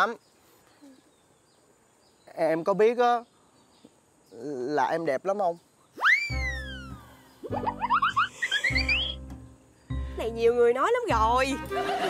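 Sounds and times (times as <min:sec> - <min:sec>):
low bass notes: 0:06.4 - 0:11.8.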